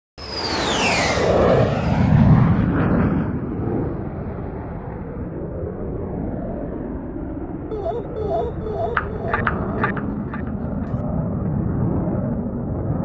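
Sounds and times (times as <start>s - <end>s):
high whistling tone gliding down: 7.7s - 11.0s.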